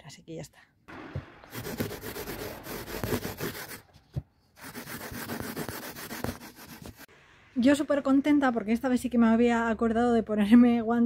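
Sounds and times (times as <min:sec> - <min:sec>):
cloth rag rubbing wood boards: 0:01.5 - 0:03.8.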